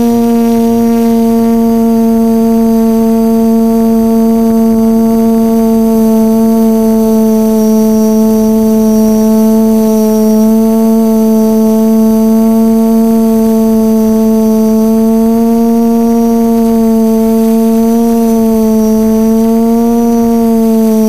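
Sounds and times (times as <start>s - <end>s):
drone motors humming: 0.0s - 21.0s.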